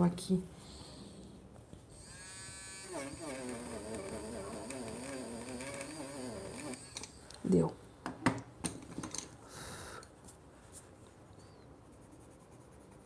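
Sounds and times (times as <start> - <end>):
electric eraser motor buzzing: 2.0 - 7.2.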